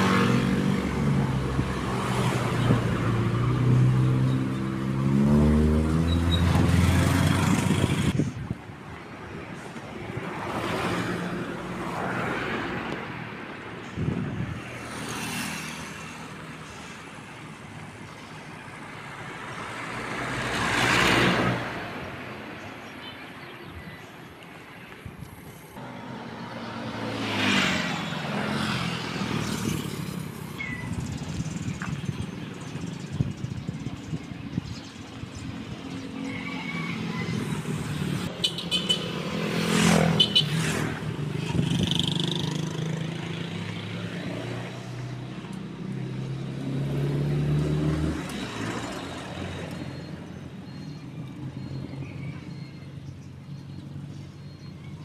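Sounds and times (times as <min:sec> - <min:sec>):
motorcycles passing: 0:00.0 - 0:23.8, 0:24.5 - 0:55.0
cars passing: 0:00.0 - 0:55.0.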